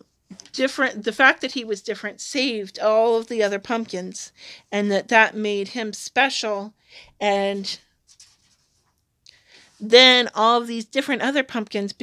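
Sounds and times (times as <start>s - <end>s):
woman speaking: 0.0s - 7.8s, 9.8s - 12.0s
paper page rustling: 8.0s - 9.0s.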